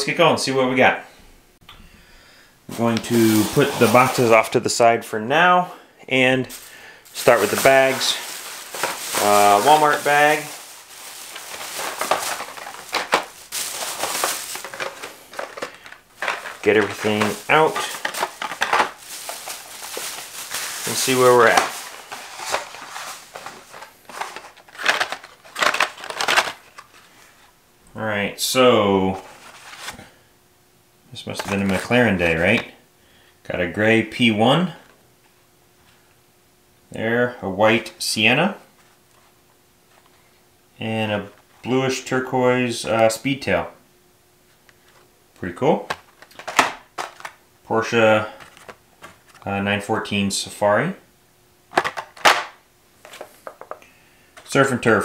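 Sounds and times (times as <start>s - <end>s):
plastic and cardboard packaging rustling: 2.7s - 4.6s, 6.5s - 27.5s, 29.2s - 30.2s, 31.4s - 32.7s, 45.9s - 47.4s, 48.2s - 49.5s, 51.7s - 53.8s
plastic bag crinkling: 2.8s - 4.5s, 6.5s - 27.1s, 46.1s - 47.4s.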